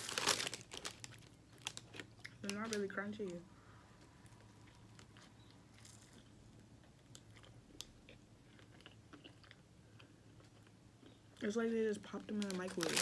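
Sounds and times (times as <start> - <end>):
chewing food: 4.0 - 11.5.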